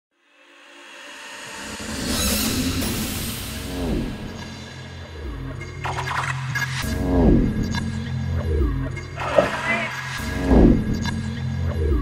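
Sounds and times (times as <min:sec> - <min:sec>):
pulsing bass: 0:03.6 - 0:12.0.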